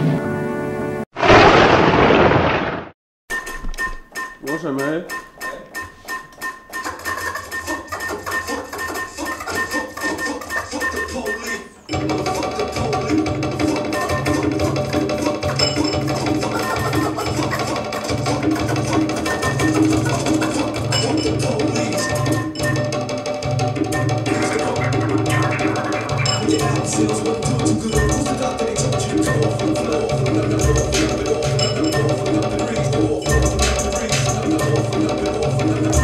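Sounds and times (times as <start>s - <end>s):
explosion-like burst of noise: 1.2s - 3.0s
record scratching: 24.3s - 27.3s.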